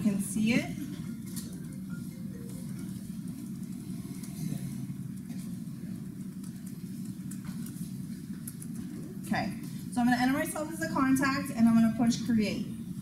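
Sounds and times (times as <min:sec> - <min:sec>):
low room rumble: 0:00.0 - 0:13.0
laptop keys typing: 0:01.0 - 0:09.2.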